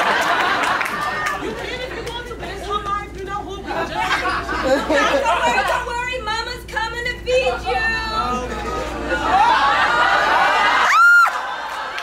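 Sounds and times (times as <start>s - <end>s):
audience laughing: 0.0s - 2.8s, 3.6s - 6.2s, 8.5s - 12.0s.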